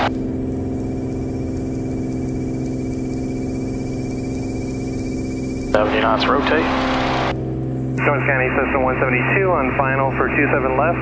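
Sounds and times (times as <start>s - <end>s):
airplane engine and propeller drone: 0.0s - 11.0s.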